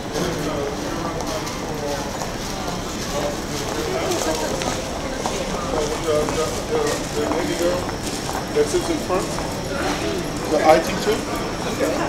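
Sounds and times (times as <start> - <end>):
busy street noise: 0.0 - 12.0
indistinct voices talking: 0.0 - 12.0.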